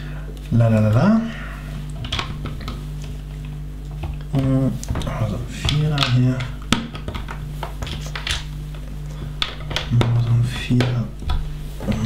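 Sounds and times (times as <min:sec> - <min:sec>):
steady low hum: 0:00.0 - 0:12.0
plastic bricks clicking and rattling: 0:04.8 - 0:08.5, 0:09.1 - 0:12.0.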